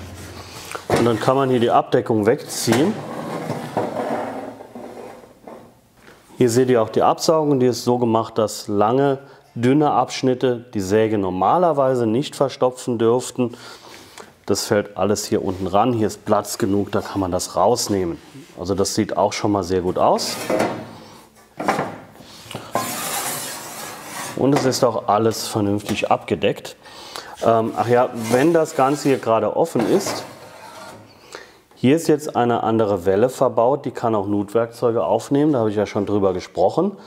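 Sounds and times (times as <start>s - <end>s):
saw cover sliding scrape: 2.9s - 5.6s, 20.2s - 21.0s, 22.7s - 24.8s, 27.8s - 31.2s.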